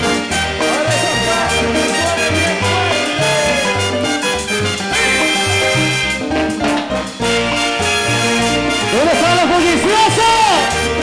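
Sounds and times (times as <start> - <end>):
live cumbia orchestra playing: 0.0 - 11.0.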